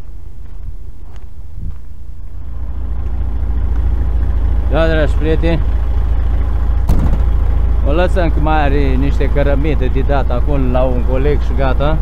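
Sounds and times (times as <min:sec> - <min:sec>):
diesel truck engine idling: 0:00.0 - 0:12.0
sharp knock: 0:06.9 - 0:07.4.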